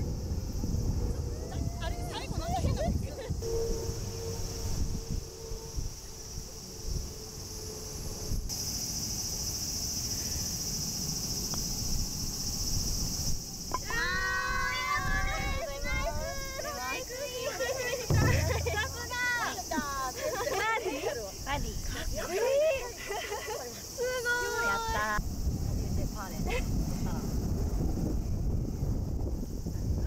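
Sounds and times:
wind rumble on microphone: 0.0s - 8.5s, 11.1s - 17.2s, 24.8s - 30.0s
insects buzzing: 0.0s - 30.0s
voices crying out: 13.8s - 25.2s.

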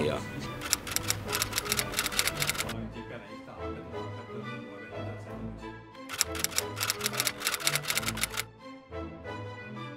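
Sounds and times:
background music: 0.0s - 9.9s
typewriter keys clacking: 0.6s - 2.8s, 6.1s - 8.4s.

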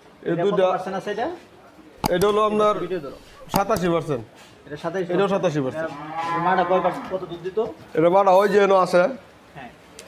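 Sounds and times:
cows mooing: 5.9s - 7.3s.

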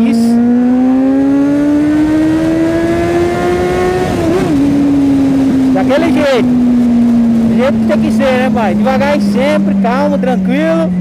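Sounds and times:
motorcycle engine revving: 0.0s - 11.0s.

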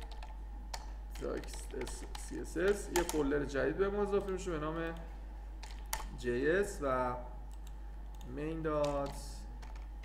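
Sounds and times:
keyboard keystroke clicks: 0.0s - 3.2s
man speaking: 1.2s - 5.1s, 6.1s - 7.4s, 8.2s - 9.6s.

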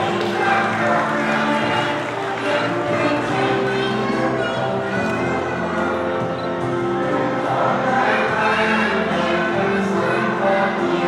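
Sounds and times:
group of voices singing: 0.0s - 11.0s
music: 0.0s - 11.0s.

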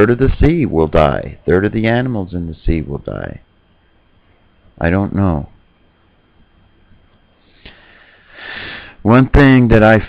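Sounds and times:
man speaking: 0.0s - 3.5s, 4.8s - 5.6s, 9.0s - 10.0s
man breathing in through nose: 7.4s - 9.0s.

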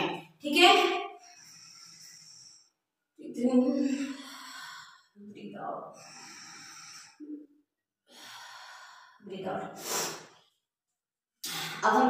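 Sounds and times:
woman breathing hard: 1.1s - 2.8s, 3.7s - 5.2s, 5.9s - 7.5s, 8.1s - 9.2s.

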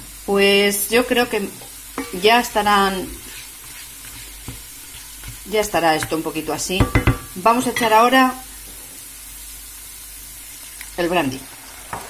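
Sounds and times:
vegetables sizzling in oil: 0.0s - 12.0s.

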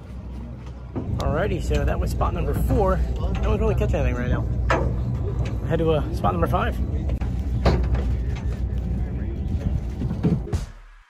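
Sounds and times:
boat engine rumbling: 0.0s - 10.6s.

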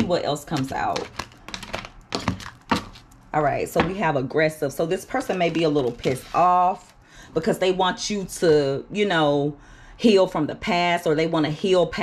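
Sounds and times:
cards snapping and tapping: 1.0s - 3.2s.

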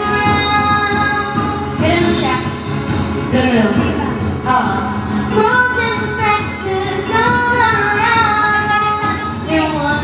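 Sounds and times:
woman singing: 0.0s - 2.6s, 3.3s - 10.0s
music: 0.0s - 10.0s.

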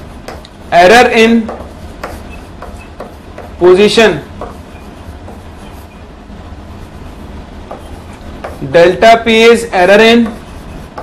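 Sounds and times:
chalk scratching on blackboard: 0.0s - 6.2s, 6.8s - 9.0s, 9.8s - 11.0s
low room hum: 0.0s - 11.0s.

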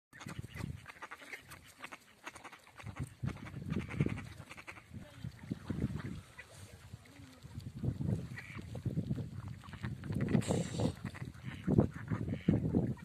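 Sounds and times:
waterfowl calling: 0.2s - 5.0s, 5.6s - 6.8s, 8.3s - 8.8s, 9.4s - 13.0s.

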